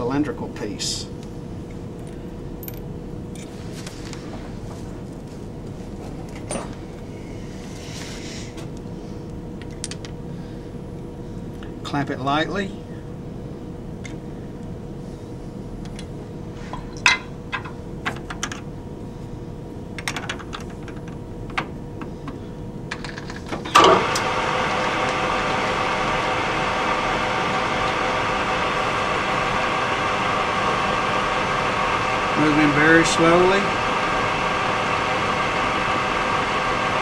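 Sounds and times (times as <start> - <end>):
lathe motor and gear hum: 13.7 - 37.0
lathe starting clunk: 23.5 - 32.4.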